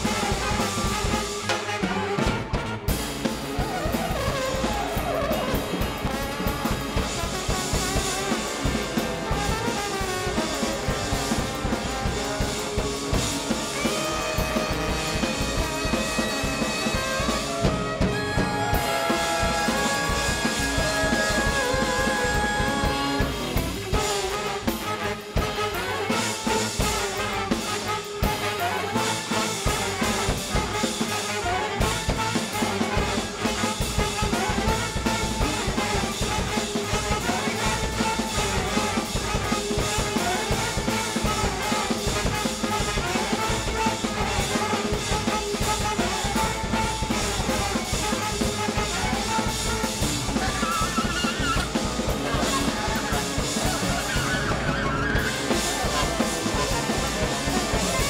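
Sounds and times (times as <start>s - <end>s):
busy drum kit: 0.0s - 58.0s
jazz big band playing: 0.0s - 58.0s.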